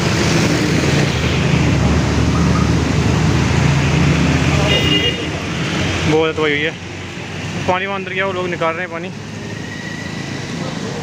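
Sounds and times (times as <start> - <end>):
motorcycle and scooter engines passing: 0.0 - 11.0.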